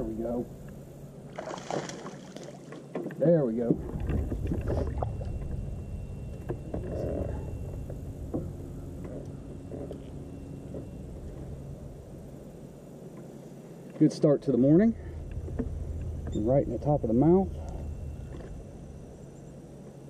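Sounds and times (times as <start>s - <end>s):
low rumble: 3.6s - 13.8s, 14.4s - 20.0s.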